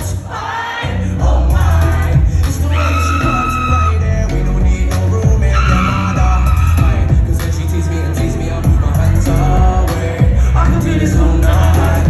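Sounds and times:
person singing: 0.0 - 12.0
heavy bass beat: 0.9 - 12.0.

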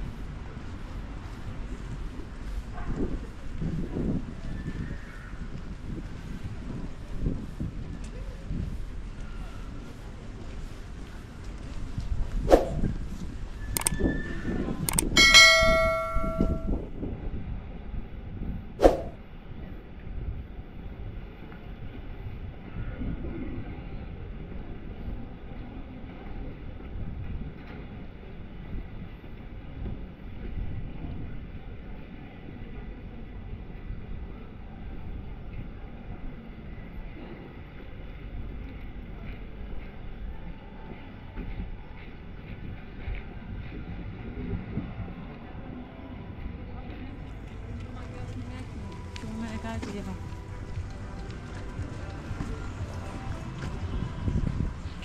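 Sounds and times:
street background: 0.0 - 55.0
metallic bell ding: 15.2 - 16.8.

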